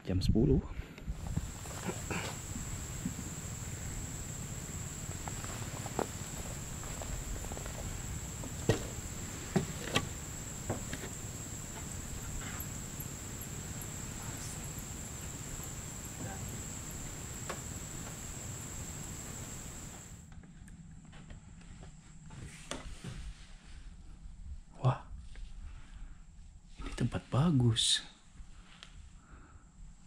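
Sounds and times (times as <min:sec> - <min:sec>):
footsteps on porch steps: 0:01.1 - 0:20.2
night insects trilling: 0:01.2 - 0:20.2
quick insect chirps: 0:01.2 - 0:20.2.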